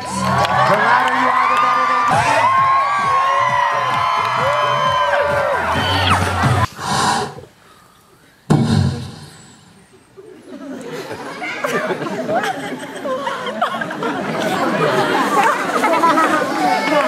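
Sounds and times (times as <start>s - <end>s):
audience cheering and shouting: 0.0s - 6.7s
dance music with a beat: 2.1s - 6.7s.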